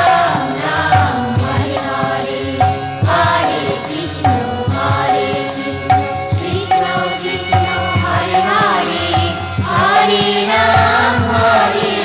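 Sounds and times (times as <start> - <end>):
group chanted singing: 0.0 - 12.0
percussion strikes: 0.0 - 12.0.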